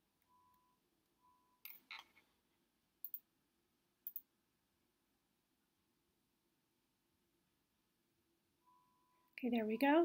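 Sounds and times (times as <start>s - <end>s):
faint short steady tone: 0.2s - 1.8s, 8.6s - 10.0s
computer mouse clicks: 3.0s - 3.2s, 4.0s - 4.3s.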